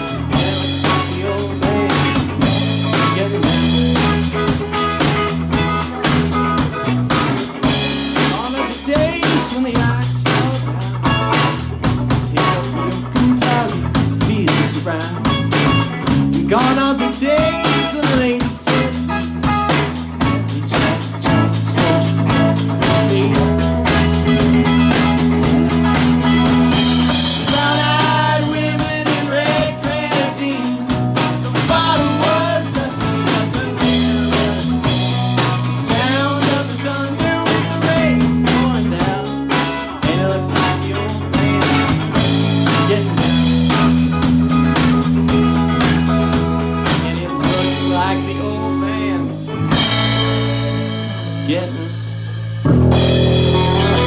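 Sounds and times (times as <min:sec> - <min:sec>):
drum kit beat: 0:00.0 - 0:54.0
electric bass: 0:00.0 - 0:54.0
electric guitar: 0:00.0 - 0:54.0.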